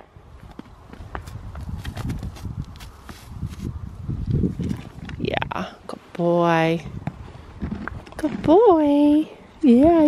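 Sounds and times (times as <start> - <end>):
horse hooves on hay and ground: 0.4 - 5.2, 6.8 - 9.3.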